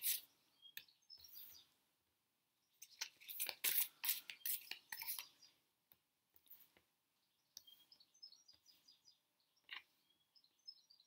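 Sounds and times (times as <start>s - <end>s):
songbird chirping: 0.0s - 11.0s.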